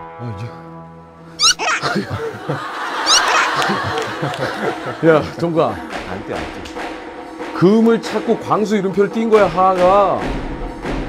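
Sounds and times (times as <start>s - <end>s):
men laughing: 1.4s - 5.6s.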